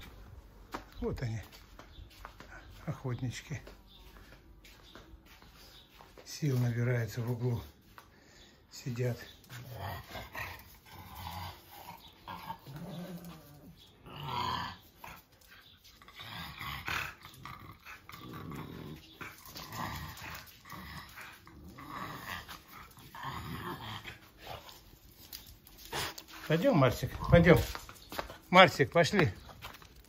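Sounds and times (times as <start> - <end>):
dogs growling: 9.3 - 26.5.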